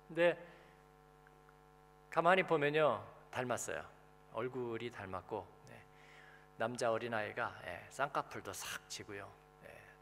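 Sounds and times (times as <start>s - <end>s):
quiet electrical hum: 0.0s - 10.0s.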